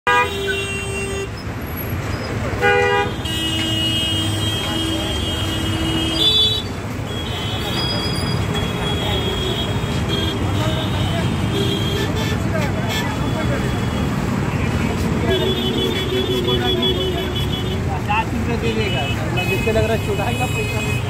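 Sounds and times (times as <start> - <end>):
car and motorbike horns honking: 0.0 - 21.0
traffic engines rumbling: 0.0 - 21.0.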